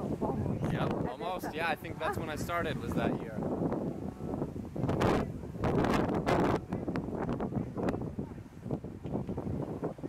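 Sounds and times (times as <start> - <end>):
wind gusting across microphone: 0.0 - 10.0.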